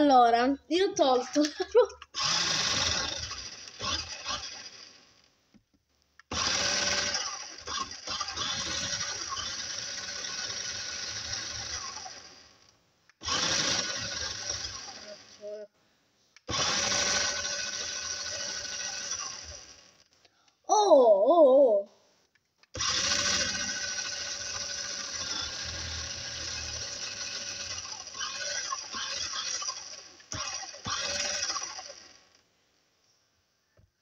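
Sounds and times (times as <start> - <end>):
small electric motor whirring: 2.1 - 5.3, 6.3 - 15.6, 16.4 - 20.0, 22.8 - 32.4.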